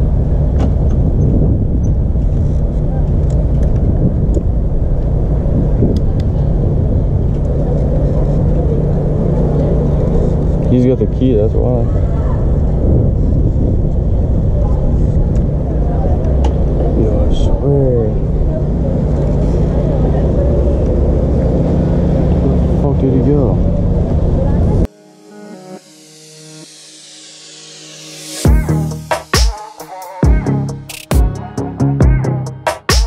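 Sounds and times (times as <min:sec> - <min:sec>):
motorcycle engine rumbling: 0:00.0 - 0:24.9
music: 0:24.9 - 0:33.0.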